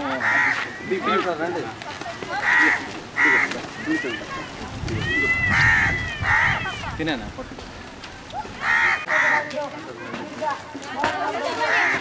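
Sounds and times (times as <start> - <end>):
crow cawing: 0.0 - 1.2, 2.3 - 4.1, 5.1 - 7.0, 8.6 - 9.6, 11.6 - 12.0
people talking: 0.0 - 5.7, 6.6 - 12.0.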